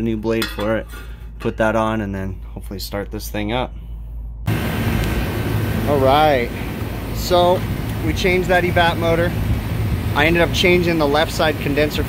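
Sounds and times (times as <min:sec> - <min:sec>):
low hum: 0:00.0 - 0:12.0
freezer condensing unit running: 0:04.5 - 0:12.0.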